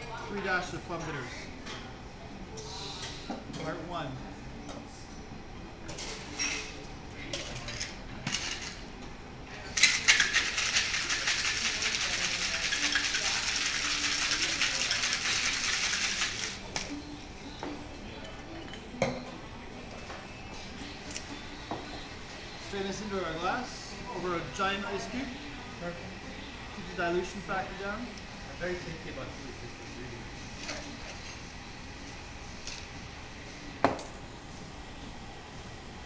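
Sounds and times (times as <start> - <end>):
ice rattling in cocktail shaker: 9.8 - 16.6.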